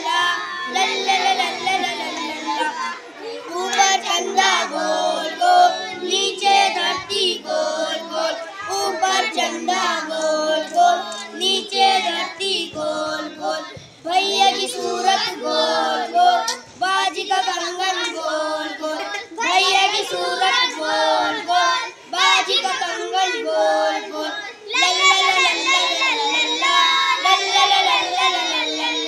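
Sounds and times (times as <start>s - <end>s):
boys singing in unison: 0.0s - 29.0s.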